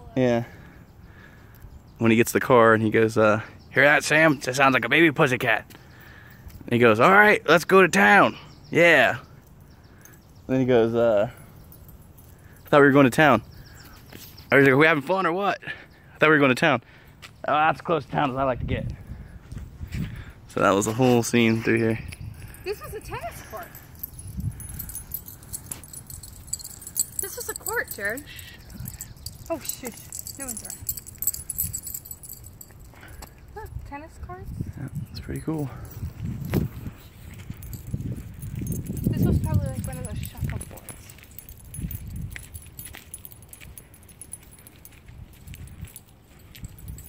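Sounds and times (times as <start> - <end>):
metallic jingling: 9.0 - 14.6, 20.1 - 47.0
wind rumble: 21.3 - 47.0
microphone handling noise: 36.0 - 39.7.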